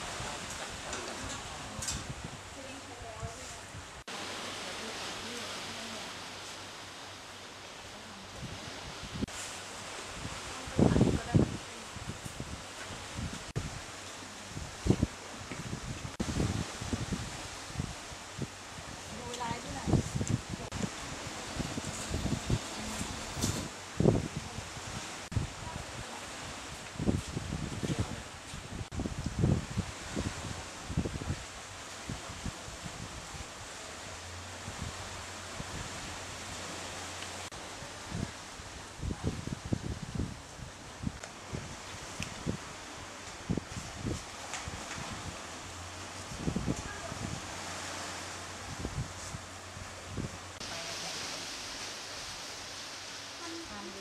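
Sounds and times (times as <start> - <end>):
wind gusting on microphone: 0.0 - 54.0
steady hiss: 47.4 - 54.0.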